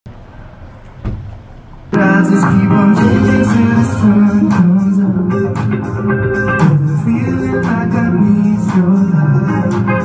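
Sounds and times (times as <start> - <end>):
live band music with guitar: 2.0 - 10.0.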